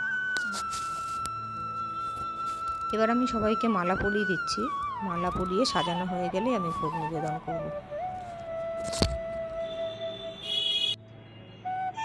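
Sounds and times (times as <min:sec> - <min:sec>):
flute-like held note: 0:00.0 - 0:12.0.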